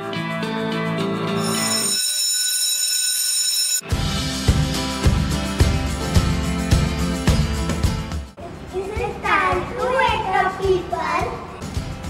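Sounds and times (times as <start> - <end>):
alarm bell ringing: 1.4 - 3.9
light guitar music: 3.8 - 12.0
music with drum beat: 3.9 - 12.0.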